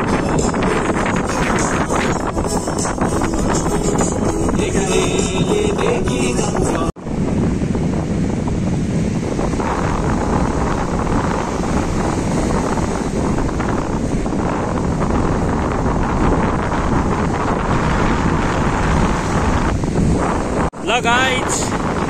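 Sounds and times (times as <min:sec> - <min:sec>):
wind buffeting microphone: 0:00.0 - 0:22.0
waves breaking on shore: 0:06.6 - 0:22.0.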